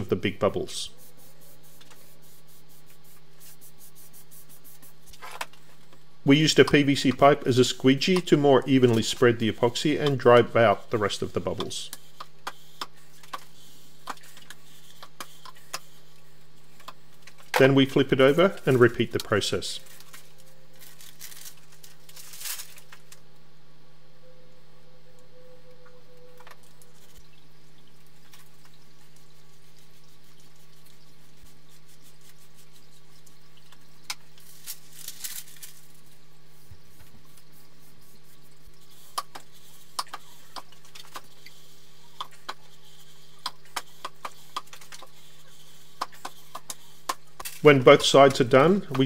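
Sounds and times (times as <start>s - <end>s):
steady low hum: 0.0s - 49.0s
paper crinkling and scraping: 17.2s - 23.2s, 34.3s - 40.1s.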